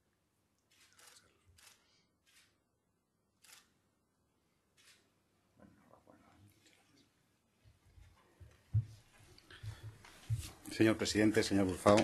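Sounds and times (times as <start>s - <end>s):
faint camera shutter clicks: 0.7s - 2.6s, 3.4s - 3.8s, 4.7s - 5.1s.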